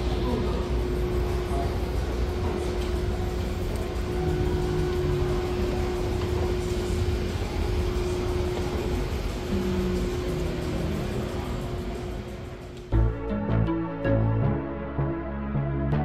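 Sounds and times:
escalator humming and rumbling: 0.0 - 16.0
faint music: 0.0 - 16.0.

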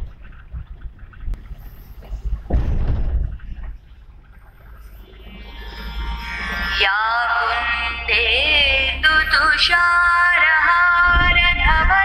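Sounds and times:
car driving rumble from inside: 0.0 - 5.6.

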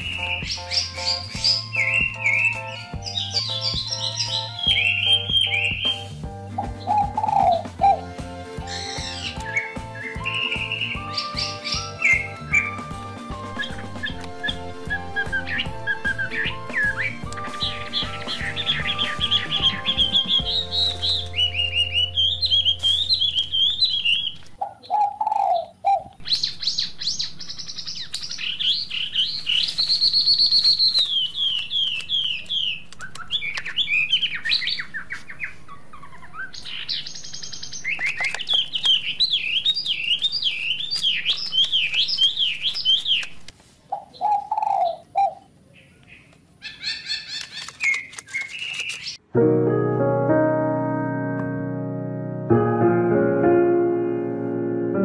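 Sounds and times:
small birds chirping: 0.0 - 8.0, 8.6 - 49.2
background music with steady beat: 0.0 - 24.0.

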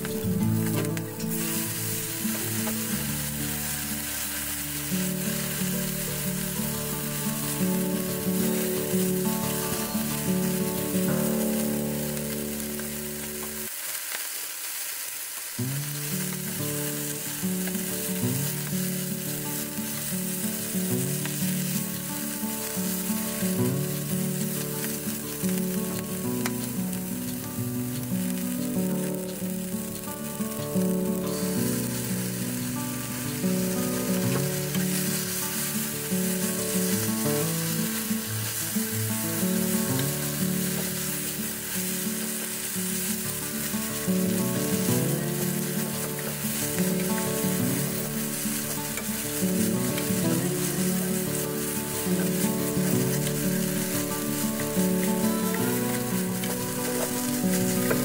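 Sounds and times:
background music with held notes: 0.0 - 13.7, 15.6 - 58.0
food sizzling in frying pan: 0.0 - 58.0
wooden spatula stirring: 44.2 - 58.0.

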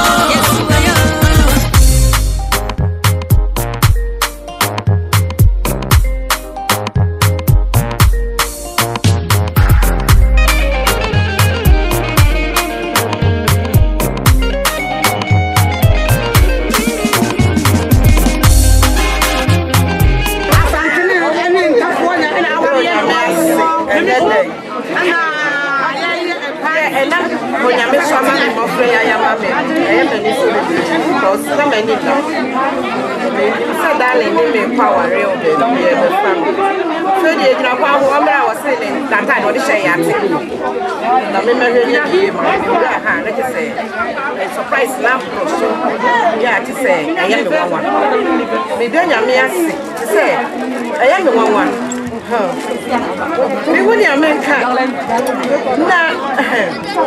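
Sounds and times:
chatter of voices: 0.0 - 3.3, 8.1 - 57.0.

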